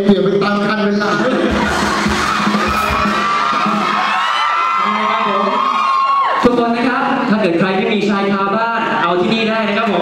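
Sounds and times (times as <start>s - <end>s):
audience screaming and cheering: 1.3s - 7.3s
low thumps: 1.5s - 4.4s.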